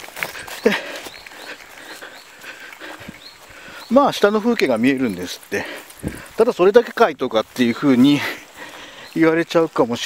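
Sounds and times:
footsteps in tall grass: 0.0s - 10.0s.

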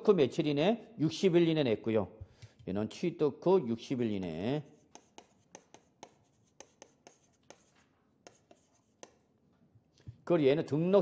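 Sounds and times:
chalk tapping and scraping: 4.2s - 9.4s.

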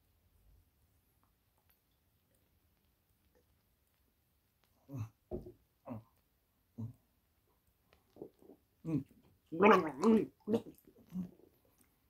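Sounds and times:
man gargling water: 8.2s - 11.4s.

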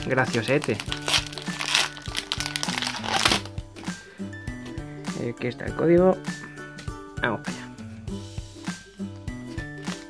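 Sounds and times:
foil wrapper crinkling: 0.0s - 3.5s
background music: 0.0s - 10.0s.

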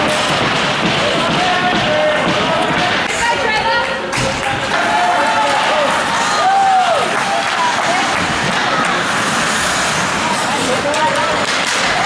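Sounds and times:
echoing arena: 0.0s - 12.0s
skates cutting ice: 7.1s - 12.0s.

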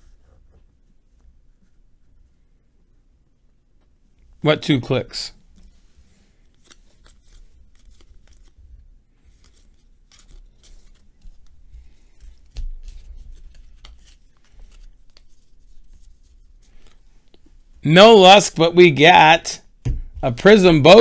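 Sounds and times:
trading cards sliding and flicking: 5.6s - 8.6s, 9.3s - 17.1s.

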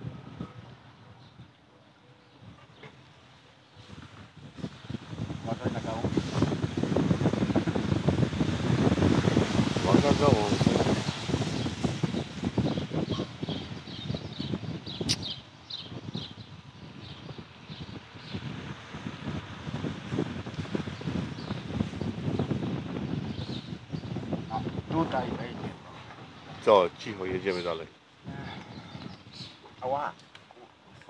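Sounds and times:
wind buffeting microphone: 0.0s - 1.6s, 3.7s - 30.2s.

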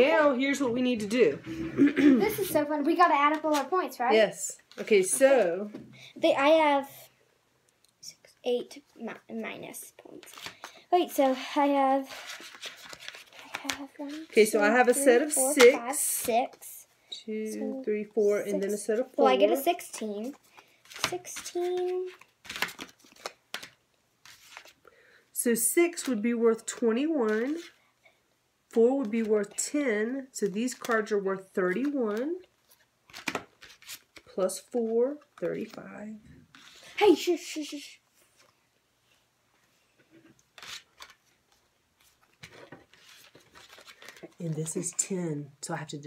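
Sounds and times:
playing cards rustling: 2.3s - 4.1s, 10.0s - 16.7s, 18.6s - 24.8s, 30.4s - 38.6s, 40.0s - 45.0s.

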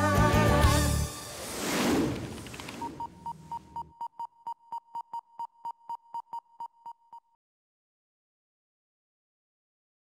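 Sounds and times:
theme music: 0.0s - 2.2s.

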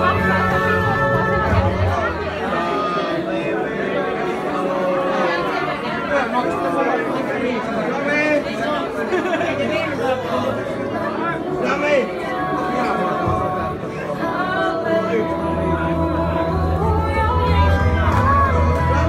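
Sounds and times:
audience chatter: 0.0s - 19.0s
music playing: 0.0s - 19.0s.

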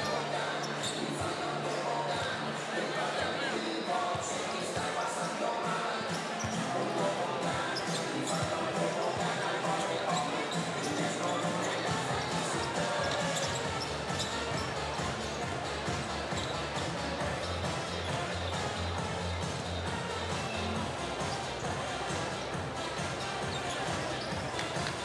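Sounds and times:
background music over loudspeakers: 0.0s - 25.0s
murmur of crowd voices: 0.0s - 25.0s.

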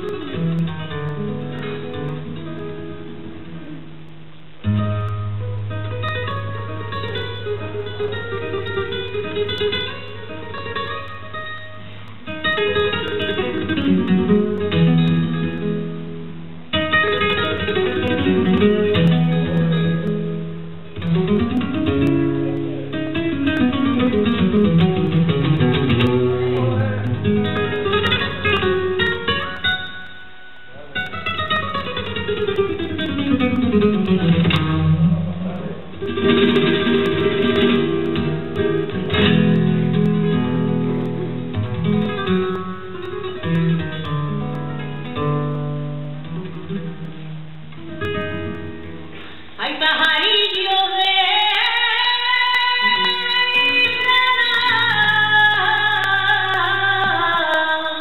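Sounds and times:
solo flamenco guitar: 0.0s - 58.0s.

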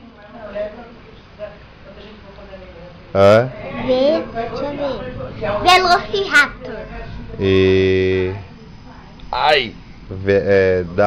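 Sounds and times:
child speaking: 3.7s - 5.0s, 5.6s - 6.7s.

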